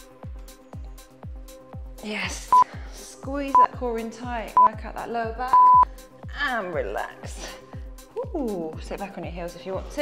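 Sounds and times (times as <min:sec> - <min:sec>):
timer beep: 0:03.5 - 0:03.7, 0:05.5 - 0:05.9.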